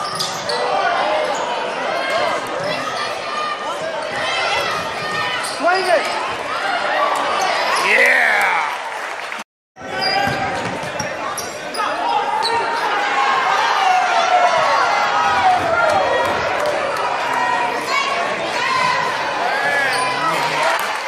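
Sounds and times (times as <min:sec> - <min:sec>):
voices of players and spectators: 0:00.0 - 0:21.0.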